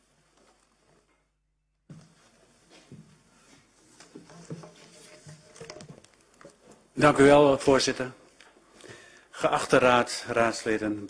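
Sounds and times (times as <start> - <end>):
papers rustling: 2.0 - 7.0.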